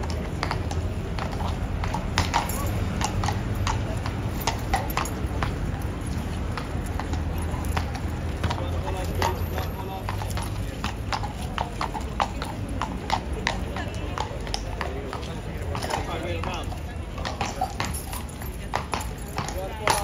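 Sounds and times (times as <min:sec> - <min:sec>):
horse hooves clopping on cobbles: 0:00.0 - 0:20.0.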